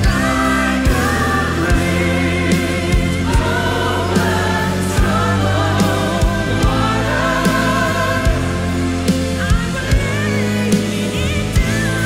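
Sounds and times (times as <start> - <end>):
bass and beat: 0.0 - 12.0
choir singing: 0.0 - 12.0
man and woman singing duet: 0.0 - 12.0.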